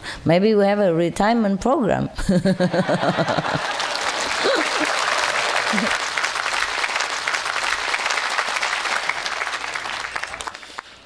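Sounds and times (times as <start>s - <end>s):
audience laughter: 2.4s - 6.2s
audience applauding: 2.8s - 11.0s.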